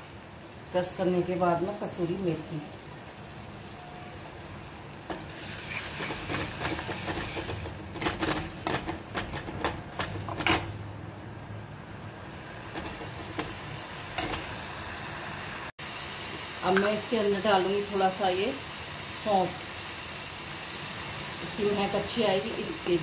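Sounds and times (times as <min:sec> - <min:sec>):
sauce sizzling in a pan: 0:00.0 - 0:08.7, 0:11.9 - 0:23.0
steel spoon stirring: 0:05.4 - 0:10.4.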